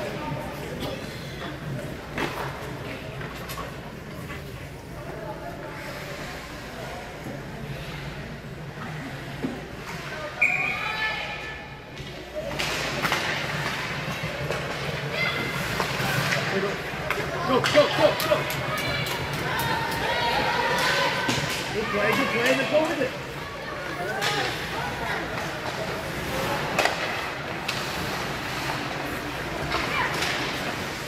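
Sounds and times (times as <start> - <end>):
spectators' voices and calls: 0.0 - 31.0.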